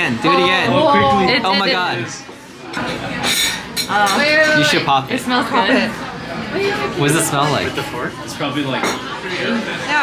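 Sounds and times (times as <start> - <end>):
restaurant chatter: 0.0 - 10.0
glassware clinking: 2.7 - 4.8, 8.8 - 9.1.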